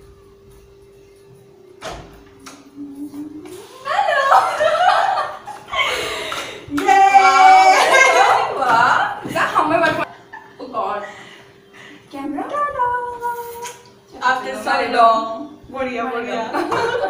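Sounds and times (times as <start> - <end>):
women laughing: 3.5 - 11.2, 16.5 - 17.0
women greeting excitedly: 6.7 - 10.1.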